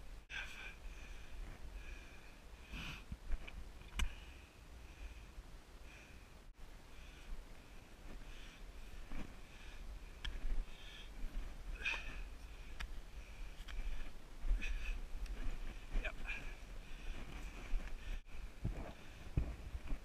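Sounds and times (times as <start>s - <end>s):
person breathing hard: 0.2s - 3.1s, 4.0s - 19.7s.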